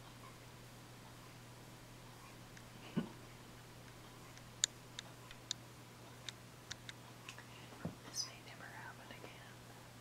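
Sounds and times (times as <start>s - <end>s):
soft murmured sounds: 0.0s - 10.0s
steady low hum: 0.0s - 10.0s
person whispering: 8.1s - 9.6s.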